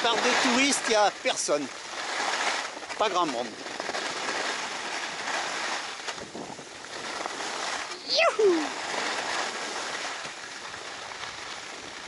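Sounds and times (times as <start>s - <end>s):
skis scraping over snow: 0.0s - 12.0s.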